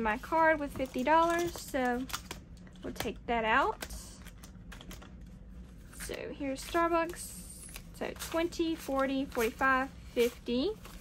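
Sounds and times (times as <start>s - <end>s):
plastic envelopes clicking and rustling: 0.2s - 11.0s.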